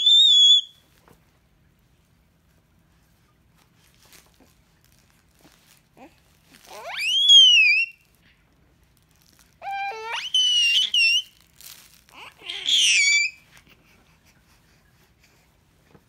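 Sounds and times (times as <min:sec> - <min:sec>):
baby squealing: 0:06.6 - 0:08.0, 0:09.6 - 0:11.4, 0:12.1 - 0:13.5.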